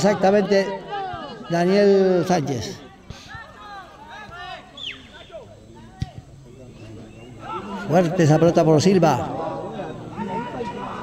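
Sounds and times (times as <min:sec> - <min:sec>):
faint distant shouts and calls: 0:00.0 - 0:11.0.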